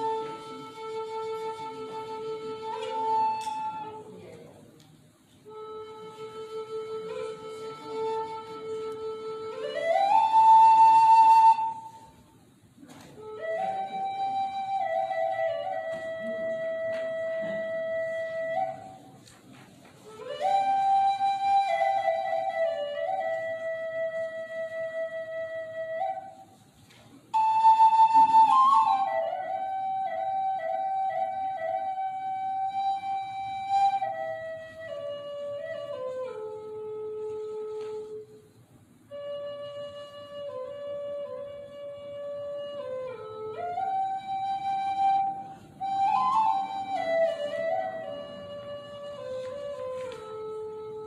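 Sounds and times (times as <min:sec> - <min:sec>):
flute-like melody: 0:00.0 - 0:04.4, 0:05.2 - 0:51.0.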